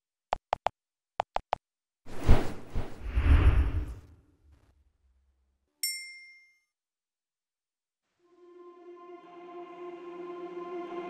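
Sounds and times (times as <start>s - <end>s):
bright bell ding: 5.8s - 6.7s.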